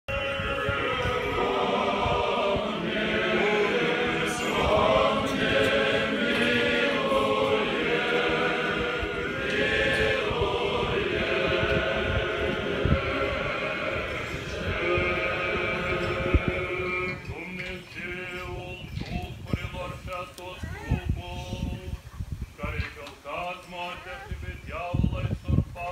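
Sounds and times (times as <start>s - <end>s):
choir chanting unaccompanied: 0.1s - 18.7s.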